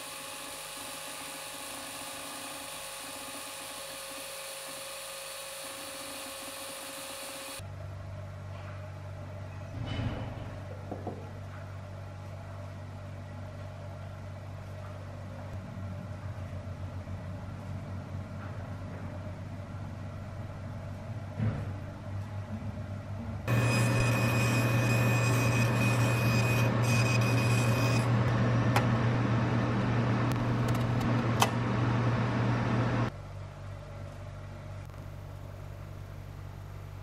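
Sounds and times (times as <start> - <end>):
machine motor humming: 0.0 - 7.6, 23.5 - 33.1
low background hum: 7.6 - 37.0.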